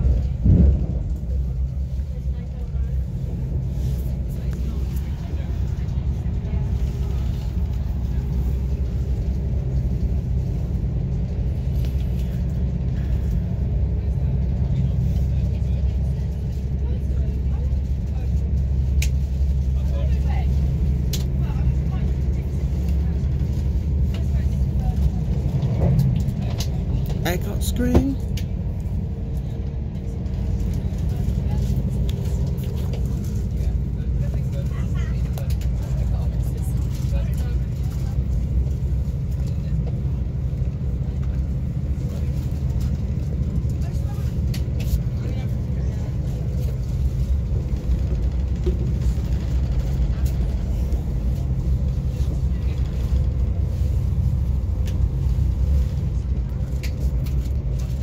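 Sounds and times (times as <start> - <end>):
train coach rumbling on track: 0.0 - 58.0.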